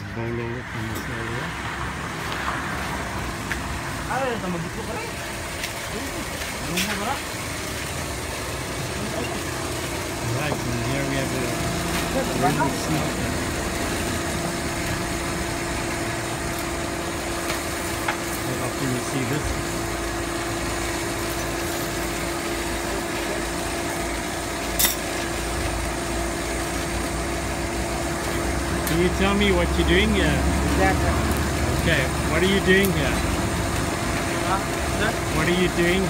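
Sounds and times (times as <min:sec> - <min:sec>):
electric blower humming: 0:08.3 - 0:36.0.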